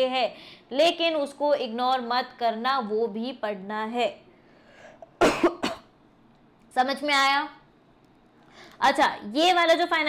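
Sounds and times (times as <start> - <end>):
woman coughing: 5.2 - 6.0.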